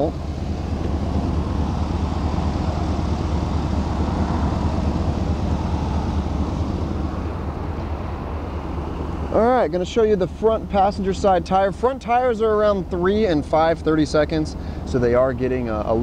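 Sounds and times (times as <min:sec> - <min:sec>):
engine idling: 0:00.0 - 0:16.0.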